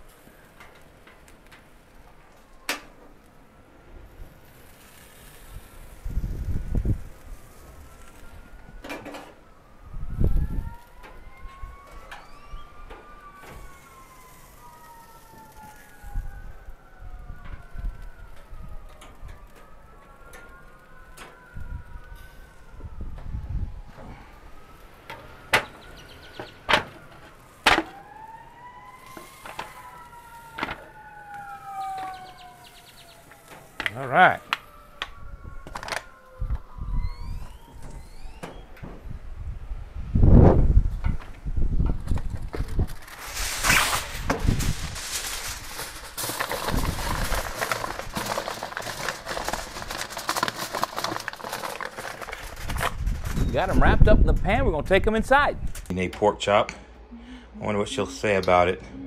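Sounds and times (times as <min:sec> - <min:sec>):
sirens wailing: 0:00.0 - 0:55.7
wind gusts on microphone: 0:05.4 - 0:08.8, 0:09.6 - 0:11.8, 0:21.5 - 0:24.7, 0:34.9 - 0:35.7, 0:36.3 - 0:48.2, 0:52.3 - 0:55.9.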